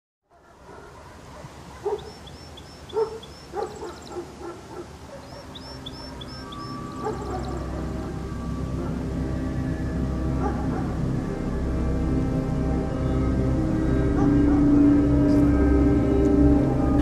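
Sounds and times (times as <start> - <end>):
outdoor background noise: 0.2 - 17.0
dog barking: 0.3 - 8.1, 8.8 - 9.0, 10.4 - 11.0, 14.1 - 14.8
high chirping calls: 1.3 - 8.2
music: 5.5 - 17.0.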